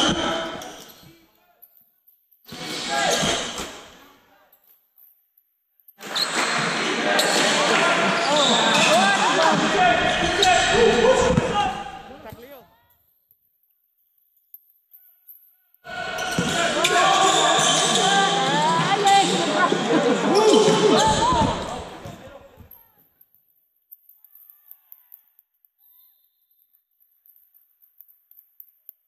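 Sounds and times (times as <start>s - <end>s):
overlapping voices: 6.0s - 12.2s, 15.9s - 22.5s.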